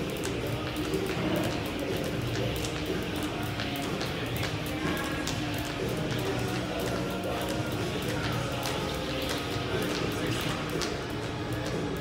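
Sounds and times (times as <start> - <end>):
jump rope ticking on floor: 0.0 - 12.0.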